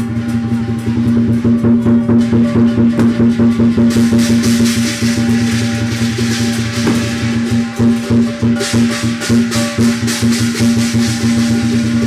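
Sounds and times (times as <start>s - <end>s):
hand cymbals clashing: 0.0s - 12.0s
large drum beating: 0.0s - 12.0s.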